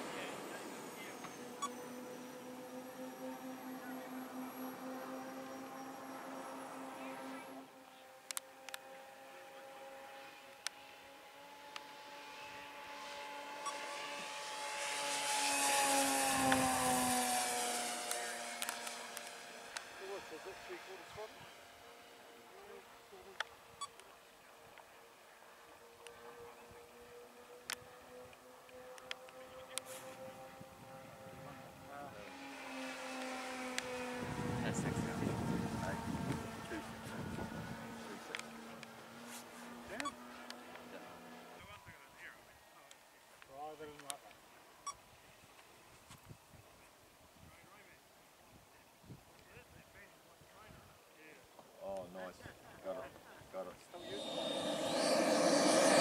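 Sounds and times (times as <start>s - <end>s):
model plane engine flying past: 0.0s - 41.6s, 53.6s - 56.0s.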